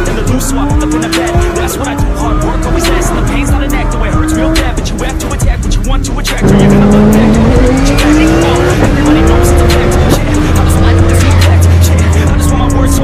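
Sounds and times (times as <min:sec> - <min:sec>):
car engine accelerating hard: 0:00.0 - 0:13.0
hip-hop music with steady beat: 0:00.0 - 0:13.0.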